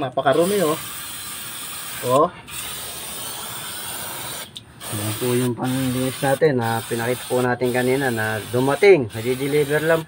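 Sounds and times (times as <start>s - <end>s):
aerosol spray hissing: 0.3s - 10.0s.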